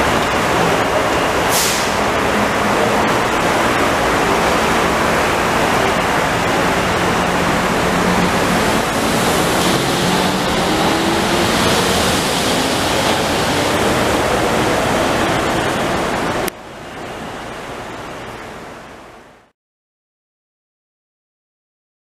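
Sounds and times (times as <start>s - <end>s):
train rushing on guideway: 0.0s - 19.4s.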